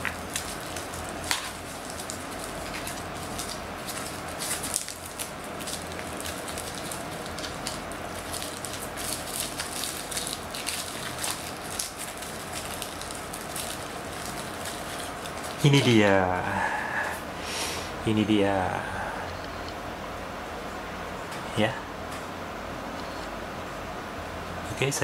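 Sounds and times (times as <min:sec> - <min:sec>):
bubble wrap crinkling: 0:00.0 - 0:16.4.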